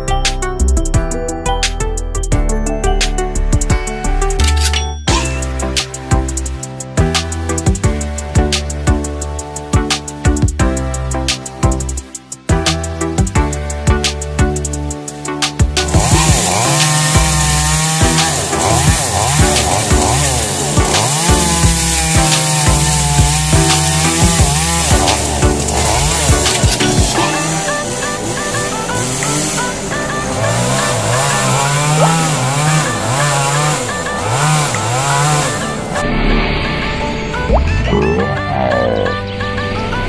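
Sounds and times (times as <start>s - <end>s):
chainsaw cutting into trunk: 15.8s - 35.8s.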